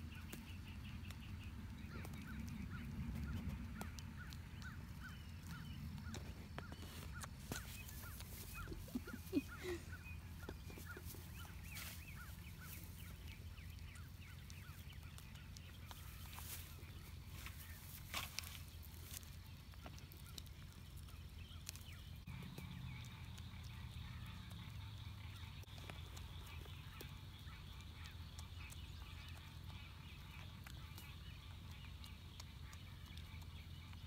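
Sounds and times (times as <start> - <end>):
steady low rumble: 0.0 - 34.0.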